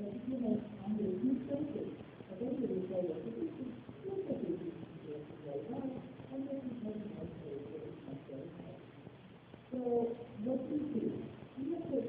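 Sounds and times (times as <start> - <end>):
muffled speech: 0.0 - 12.0.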